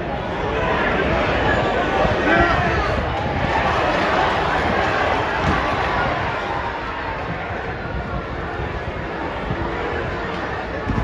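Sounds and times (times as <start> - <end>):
crowd chatter and shouting: 0.0 - 11.0.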